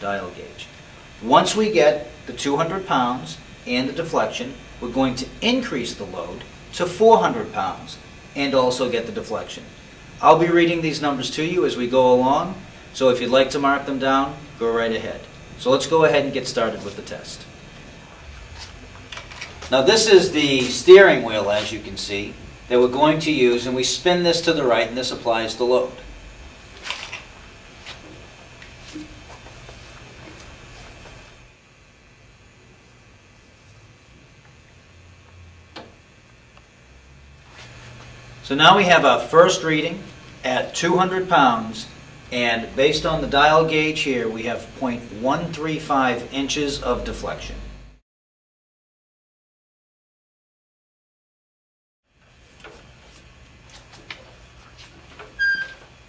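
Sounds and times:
low steady hum: 0:00.0 - 0:48.0
short high squeak: 0:55.4 - 0:55.9.

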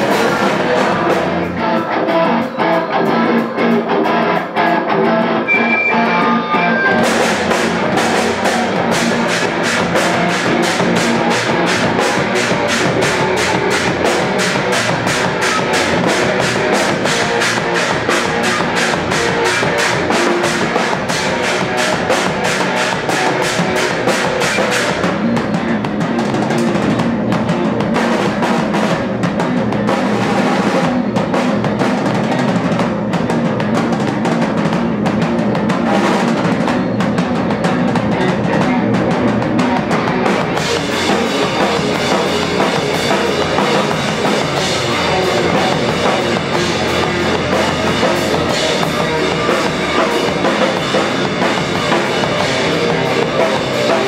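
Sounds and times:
live rock band playing: 0:00.0 - 0:54.0
drum kit hits: 0:05.5 - 0:54.0.

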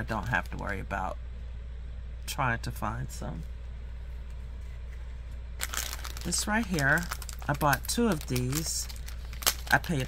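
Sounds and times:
plastic packaging crinkling: 0:00.0 - 0:00.8, 0:05.6 - 0:10.0
low steady hum: 0:00.0 - 0:10.0.

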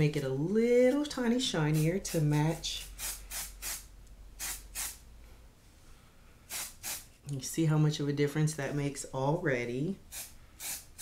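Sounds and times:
spray bottle misting: 0:03.0 - 0:05.0, 0:06.5 - 0:07.1, 0:10.1 - 0:11.0.

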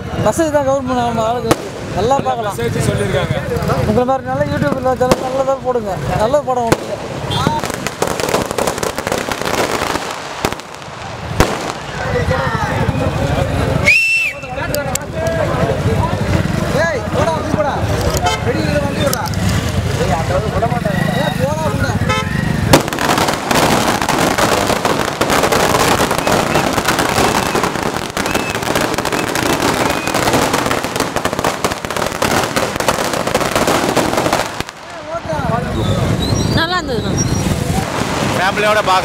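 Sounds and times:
firecrackers crackling: 0:00.0 - 0:39.0
firecracker bang: 0:06.6 - 0:12.4, 0:22.6 - 0:35.4, 0:37.5 - 0:39.0
crowd voices shouting: 0:25.7 - 0:30.6.

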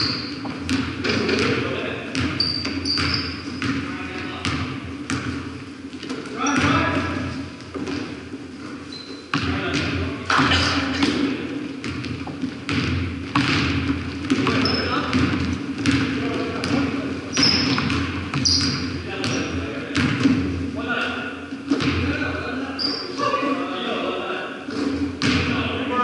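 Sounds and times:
sneaker squeaks: 0:00.0 - 0:01.4, 0:02.1 - 0:03.8, 0:06.0 - 0:09.4, 0:14.3 - 0:15.2, 0:16.6 - 0:19.6, 0:22.7 - 0:23.4
basketball bouncing on hardwood: 0:00.4 - 0:05.4, 0:11.8 - 0:20.5.

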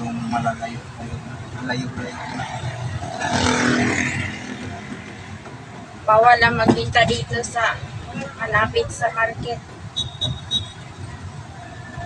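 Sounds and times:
truck engine and road noise: 0:00.0 - 0:12.0.

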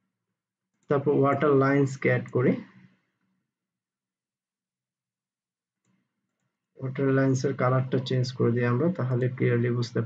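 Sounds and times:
man's voice: 0:00.9 - 0:02.6.

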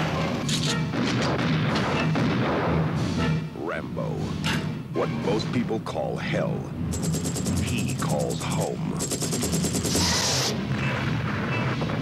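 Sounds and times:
heavy gunfire: 0:00.9 - 0:03.0, 0:07.0 - 0:12.0
explosions: 0:00.9 - 0:03.2.

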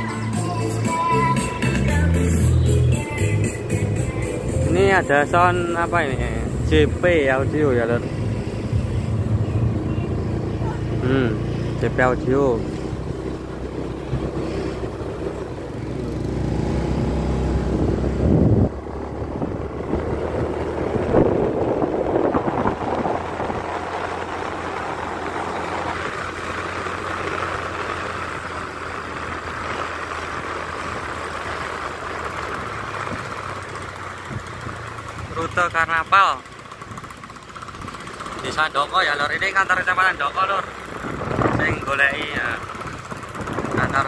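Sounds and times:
heavy low rumble: 0:00.0 - 0:32.0, 0:39.5 - 0:44.0
road and wind hiss: 0:00.0 - 0:44.0
vehicle engine: 0:00.0 - 0:44.0.

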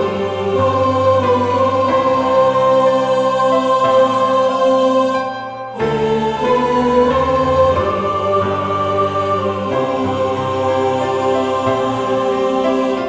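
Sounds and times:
choir singing: 0:00.0 - 0:13.0
piano accompaniment: 0:00.0 - 0:13.0.

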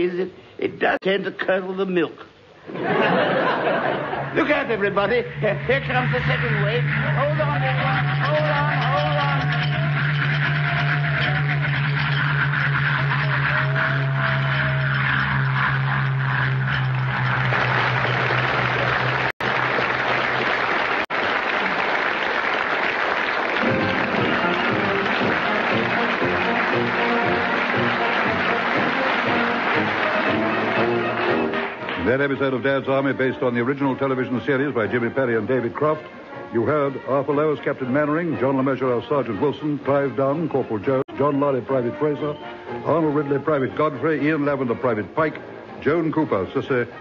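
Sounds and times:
audience applause: 0:02.8 - 0:32.4
theme music: 0:02.9 - 0:21.4, 0:22.0 - 0:46.5.

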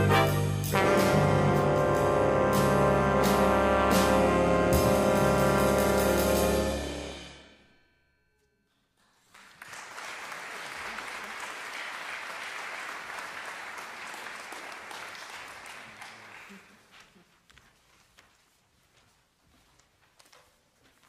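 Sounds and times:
big band final chord: 0:00.0 - 0:07.7
audience applauding: 0:09.2 - 0:17.2.

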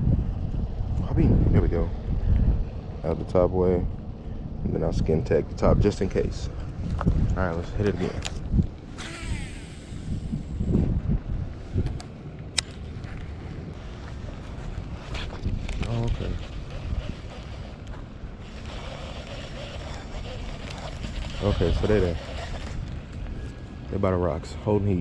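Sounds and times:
wind on microphone: 0:00.0 - 0:12.2, 0:12.8 - 0:25.0
fishing reel whirring: 0:08.9 - 0:10.7, 0:15.8 - 0:23.6.

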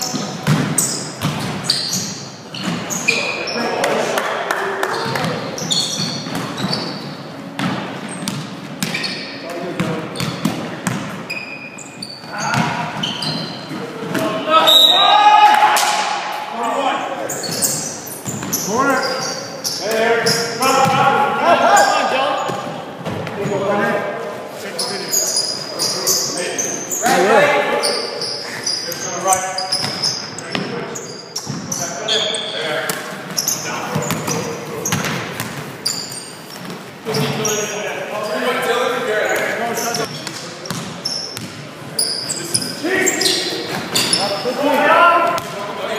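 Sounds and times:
players calling out: 0:12.0 - 0:23.8, 0:37.1 - 0:45.9.

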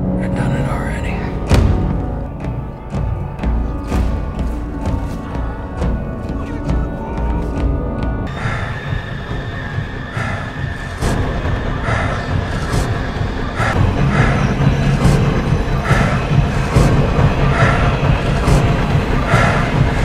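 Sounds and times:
dramatic pulsing music: 0:00.0 - 0:20.0
heavy low rumble: 0:00.0 - 0:20.0.

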